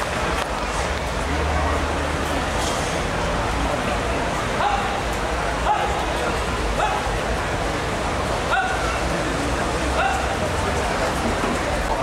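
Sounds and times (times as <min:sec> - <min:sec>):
crowd hubbub: 0:00.0 - 0:12.0.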